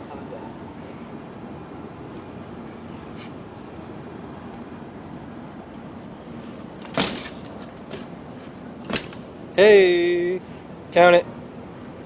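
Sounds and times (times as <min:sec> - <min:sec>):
low background hum: 0:00.0 - 0:12.0
bike landing on concrete: 0:06.8 - 0:08.1, 0:08.8 - 0:09.3.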